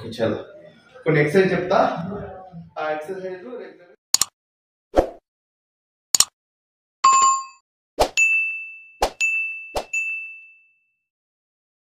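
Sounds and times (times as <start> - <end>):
sharp clicks: 4.2 - 4.4, 6.2 - 6.4
bell ding: 7.0 - 7.6, 8.2 - 11.0
bright chime: 8.2 - 10.8.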